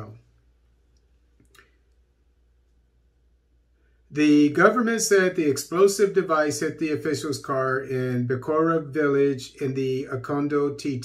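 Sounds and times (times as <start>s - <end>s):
person speaking: 4.1s - 11.0s.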